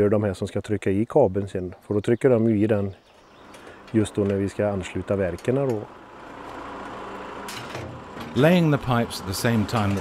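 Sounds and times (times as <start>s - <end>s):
low engine hum: 3.2s - 10.0s.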